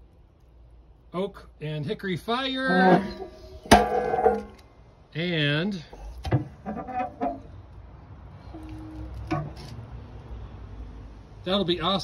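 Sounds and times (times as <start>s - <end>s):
metal lid clanging shut: 2.8s - 4.6s.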